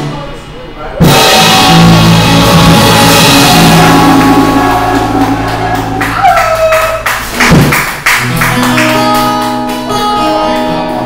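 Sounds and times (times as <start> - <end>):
plucked guitar notes: 1.0 - 6.5
bass guitar and drums trio: 1.0 - 11.0.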